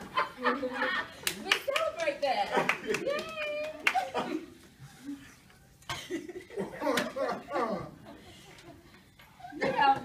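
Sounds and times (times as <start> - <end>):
lively talk: 0.2 - 5.1.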